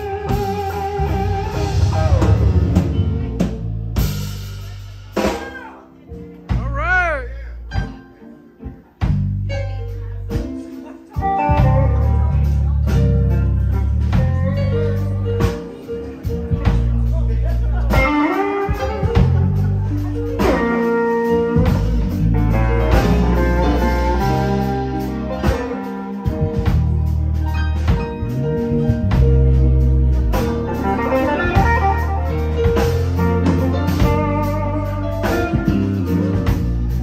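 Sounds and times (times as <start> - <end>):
electric guitar lead: 0.0 - 4.6, 7.5 - 37.0
bass notes: 0.0 - 37.0
blues band playing: 0.0 - 37.0
drums: 0.0 - 37.0.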